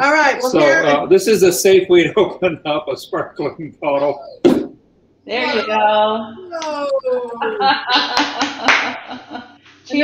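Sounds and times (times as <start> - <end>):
voices laughing and exclaiming: 1.8 - 4.4, 5.3 - 9.6
hands clapping: 8.1 - 9.2.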